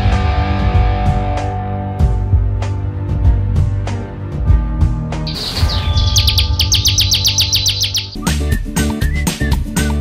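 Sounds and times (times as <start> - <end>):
background music: 0.0 - 10.0
songbird singing: 5.3 - 9.2.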